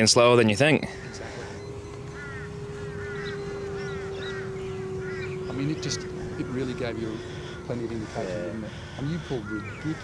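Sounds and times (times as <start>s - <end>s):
birds chirping: 0.0s - 10.0s
model plane motor humming: 0.0s - 10.0s.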